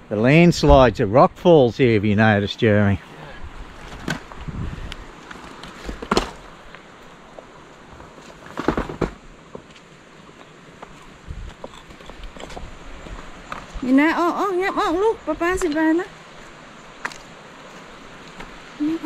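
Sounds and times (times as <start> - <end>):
vehicle knocks and bumps: 8.2 - 9.7.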